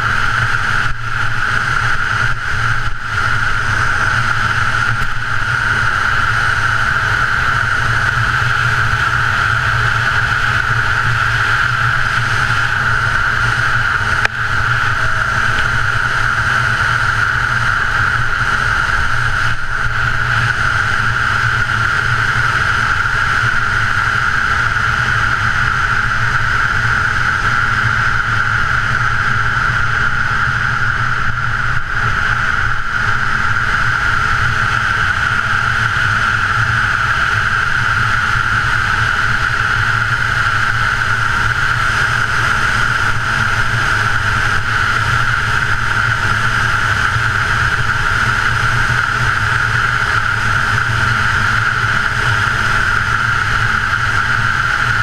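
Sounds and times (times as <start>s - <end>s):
low rumble: 0.0s - 24.6s
rushing noise of travel over snow: 0.0s - 55.0s.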